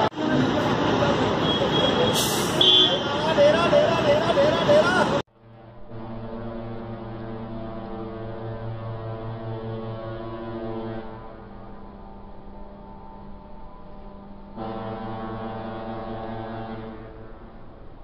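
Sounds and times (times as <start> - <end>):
voices: 0.0 - 5.2
traffic: 0.0 - 18.0
droning held notes: 5.4 - 18.0.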